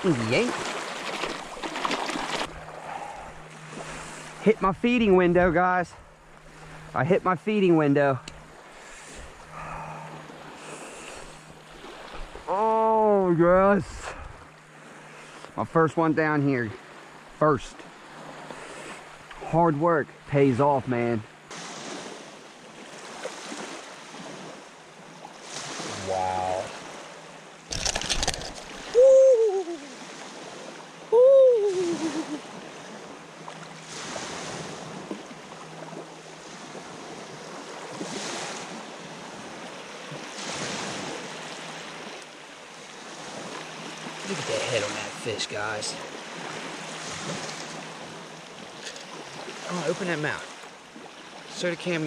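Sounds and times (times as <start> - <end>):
small waves lapping: 0.0 - 52.0
wind: 0.0 - 52.0.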